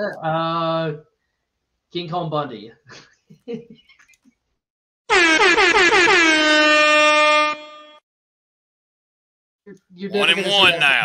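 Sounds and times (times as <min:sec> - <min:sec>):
air horn blasts: 0:05.1 - 0:08.0.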